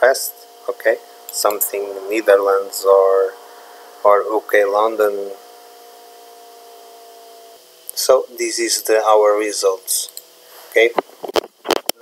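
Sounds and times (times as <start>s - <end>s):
faint hum of held tones: 0.0s - 12.0s
low hiss: 0.0s - 12.0s.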